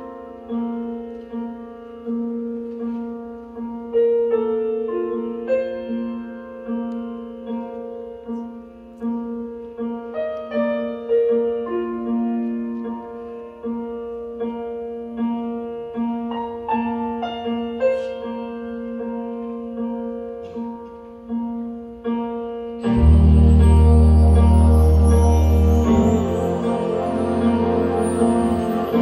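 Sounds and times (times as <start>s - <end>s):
piano ballad melody: 0.0s - 29.0s
jazz big band playing: 22.8s - 29.0s.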